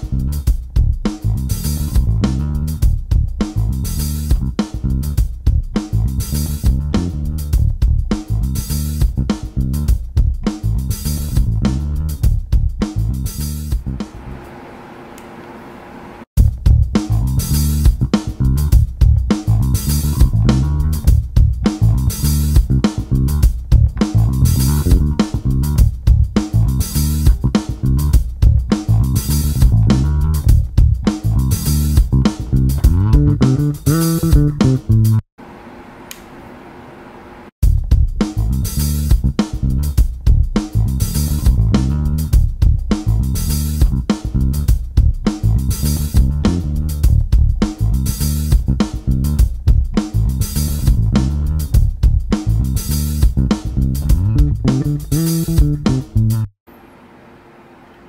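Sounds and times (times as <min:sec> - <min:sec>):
electric bass plucked: 0:00.0 - 0:14.0, 0:16.4 - 0:35.2, 0:37.6 - 0:56.5.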